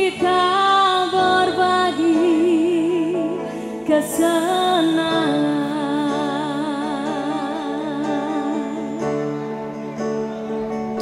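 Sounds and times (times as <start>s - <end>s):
woman singing with vibrato: 0.0s - 9.4s
sustained keyboard chords: 0.0s - 11.0s
live band playing: 3.3s - 11.0s.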